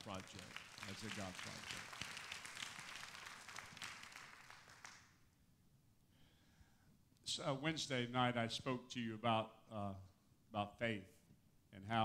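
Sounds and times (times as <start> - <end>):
congregation applauding: 0.0 - 5.2.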